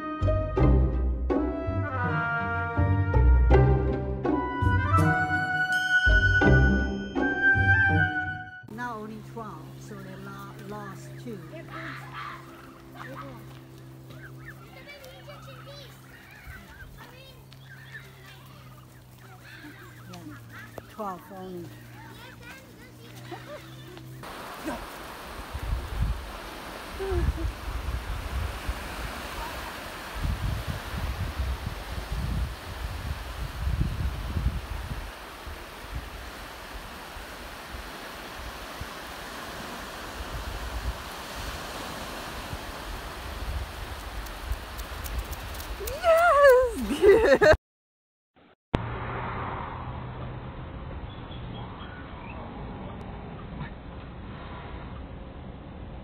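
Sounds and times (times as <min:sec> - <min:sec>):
geese and goslings peeping: 0:10.8 - 0:22.6
wind buffeting microphone: 0:24.2 - 0:47.0
surf: 0:24.2 - 0:47.3.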